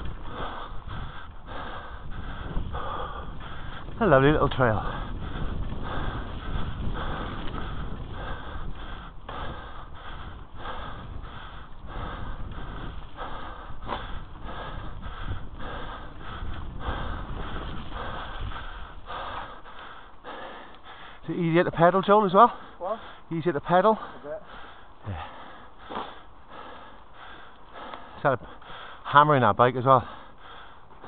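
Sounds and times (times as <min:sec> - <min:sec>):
person breathing hard: 0:00.0 - 0:04.0, 0:04.8 - 0:21.3, 0:23.9 - 0:29.1, 0:30.0 - 0:31.0
low rumble of bike ride: 0:00.0 - 0:31.0.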